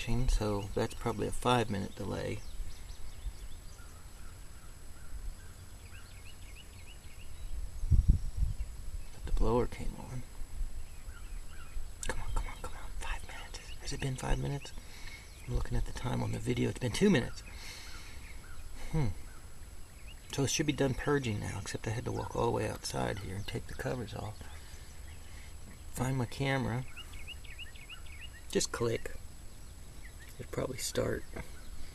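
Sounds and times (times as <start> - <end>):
faint bird chirps: 0.0 - 31.9
man humming hmm: 18.8 - 19.3.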